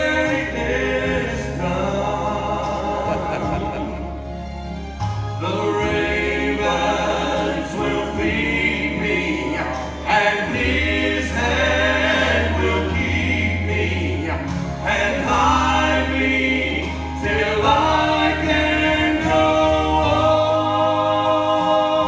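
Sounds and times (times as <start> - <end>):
acoustic guitar: 0.0 - 22.0
bass guitar: 0.0 - 22.0
male trio singing in harmony: 0.0 - 22.0.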